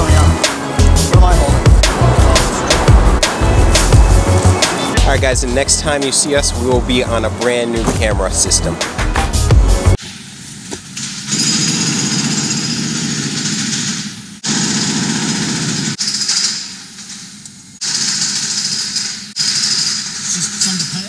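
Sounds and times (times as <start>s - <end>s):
street noise: 0.0s - 11.3s
rapid mechanical rattle: 11.0s - 20.7s.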